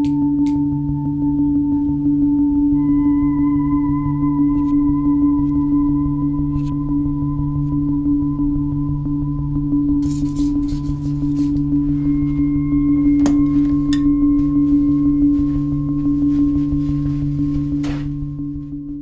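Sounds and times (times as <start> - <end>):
low ambient drone: 0.0 - 19.0.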